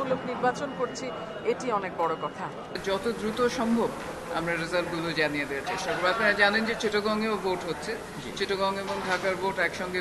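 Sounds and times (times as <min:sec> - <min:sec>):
woman speaking into microphones: 0:00.0 - 0:02.7.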